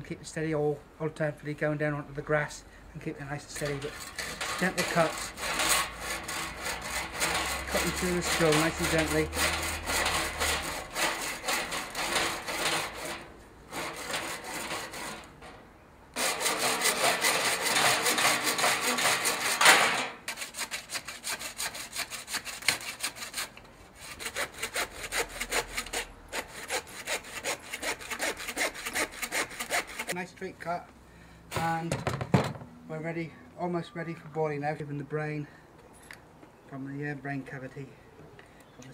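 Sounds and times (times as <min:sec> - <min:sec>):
handsaw cutting through bone: 0:03.7 - 0:15.2, 0:16.2 - 0:19.6, 0:20.3 - 0:30.2.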